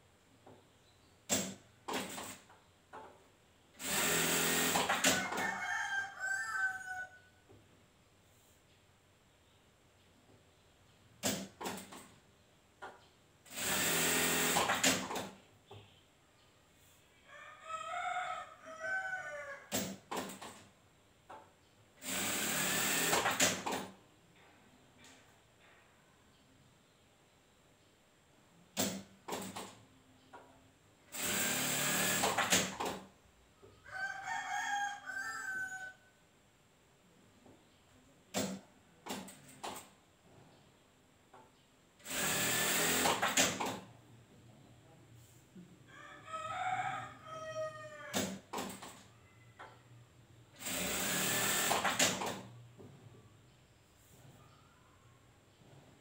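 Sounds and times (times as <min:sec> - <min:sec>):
sewing machine running: 0:03.8 - 0:05.1, 0:13.5 - 0:15.0, 0:22.0 - 0:23.5, 0:31.1 - 0:32.6, 0:42.0 - 0:43.4, 0:50.6 - 0:52.1
rooster crowing: 0:05.0 - 0:07.4, 0:17.2 - 0:19.7, 0:33.8 - 0:36.2, 0:45.9 - 0:48.2.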